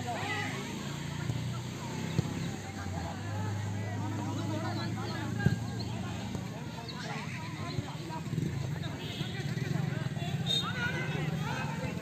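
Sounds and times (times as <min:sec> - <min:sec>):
distant shouts of footballers: 0:00.0 - 0:12.0.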